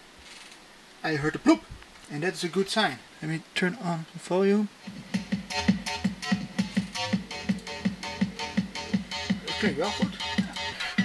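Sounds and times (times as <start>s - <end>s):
electronic music with bass: 4.8s - 11.0s.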